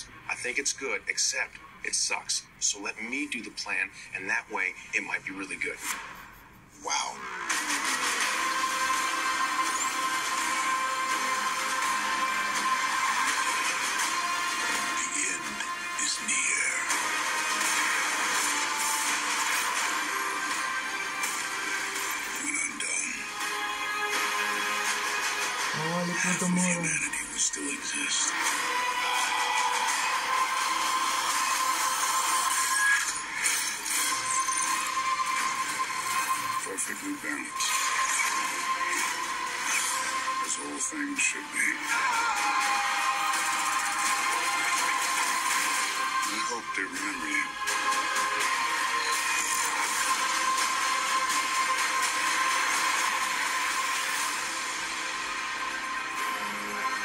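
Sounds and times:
trailer music: 5.8 - 57.0.

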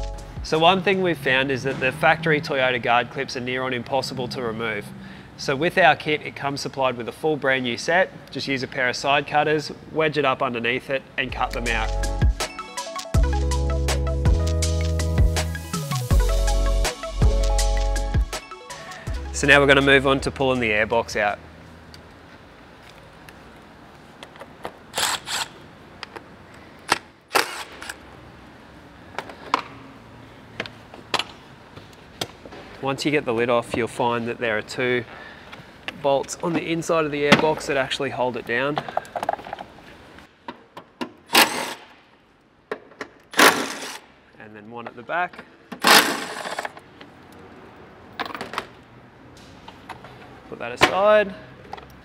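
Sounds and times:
steady low hiss: 0.0 - 1.7, 19.2 - 25.0
small cordless driver: 25.0 - 25.6.

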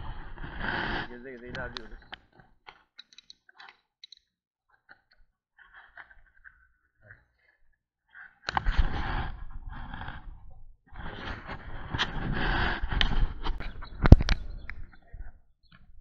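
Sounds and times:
wind rushing over microphone: 8.6 - 15.0.

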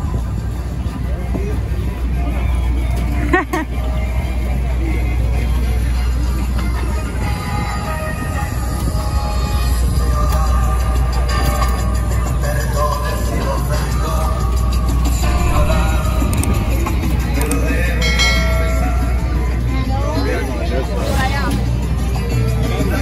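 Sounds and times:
crowd voices: 0.0 - 23.0
music: 0.0 - 23.0
traffic rumble: 0.0 - 23.0.

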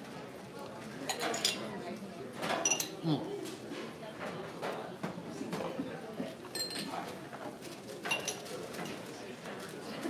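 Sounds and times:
crowd chatter: 0.0 - 10.0
dishes clinking: 2.5 - 3.0, 8.1 - 9.0.

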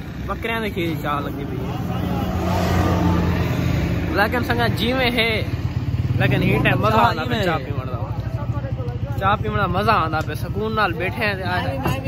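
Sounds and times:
man talking: 0.1 - 2.8, 4.0 - 12.0.

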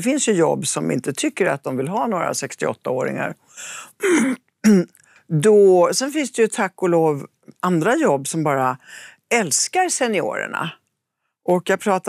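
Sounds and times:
woman clearing throat: 4.0 - 4.9.

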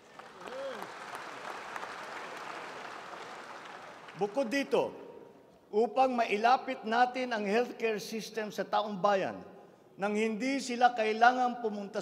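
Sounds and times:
audience applauding: 0.0 - 4.4.

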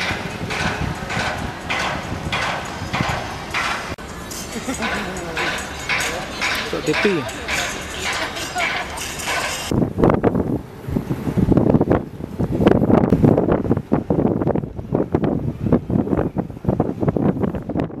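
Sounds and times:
wind on microphone: 0.0 - 18.0
person speaking: 4.7 - 9.1.

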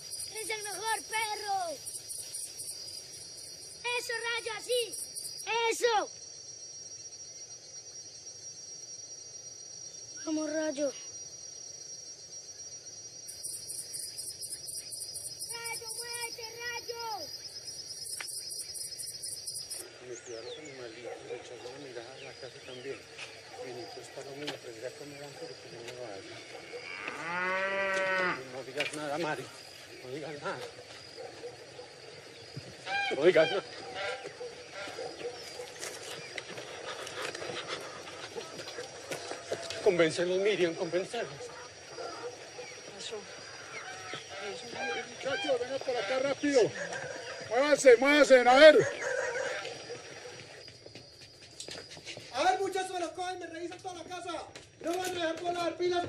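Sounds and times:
crickets chirping: 0.0 - 56.0
high insect whine: 0.0 - 56.0
cow mooing: 26.8 - 28.4.

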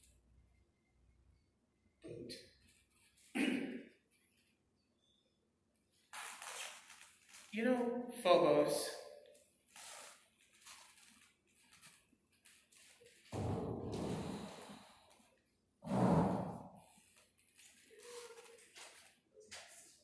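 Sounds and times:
heavy breaths through mask: 13.9 - 15.3
faint shuffling: 17.0 - 20.0.

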